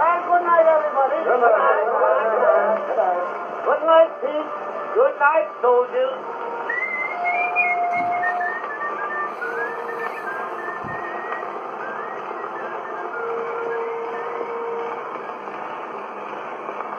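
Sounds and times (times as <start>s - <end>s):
old record music: 0.0s - 16.9s
record surface hiss: 0.0s - 16.9s.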